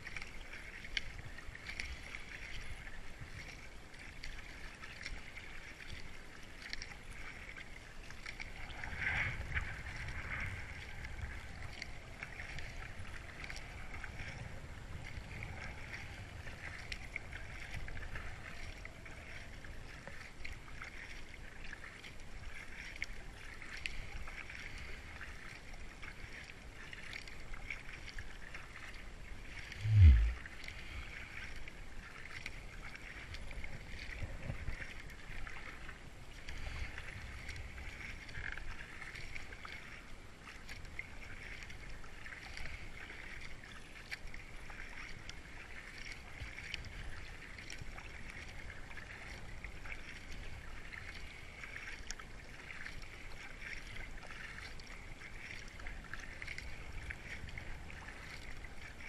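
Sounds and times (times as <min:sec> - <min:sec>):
paddle strokes: 0:00.0 - 0:59.0
rush of river water: 0:00.0 - 0:59.0
loud low thump: 0:29.8 - 0:30.4.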